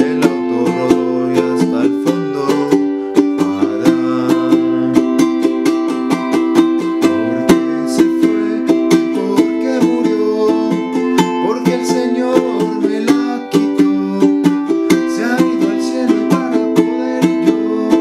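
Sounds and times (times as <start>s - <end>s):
ukulele strumming chords: 0.0s - 18.0s.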